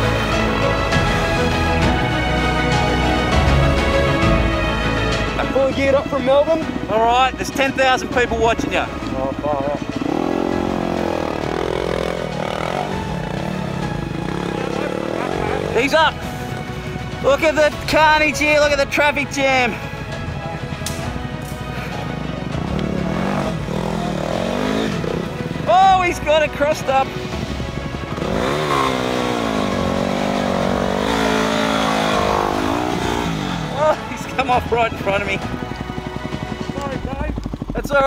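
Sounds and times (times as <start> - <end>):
background music: 0.0 - 38.0
dirt bike engines revving: 1.9 - 38.0.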